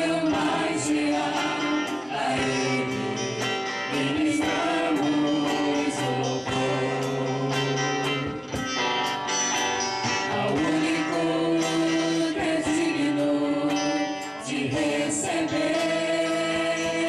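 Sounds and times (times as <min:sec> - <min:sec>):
strummed guitars: 0:00.0 - 0:17.0
woman singing: 0:10.4 - 0:17.0.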